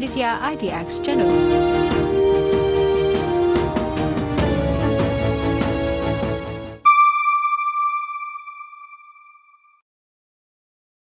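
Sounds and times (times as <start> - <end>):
bell-like chime note: 6.8 - 9.7.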